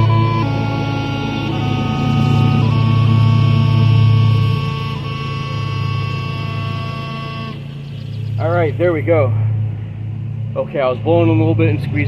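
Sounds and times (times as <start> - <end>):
bagpipe chanter melody: 0.0 - 9.0
bagpipe drones: 0.0 - 10.0.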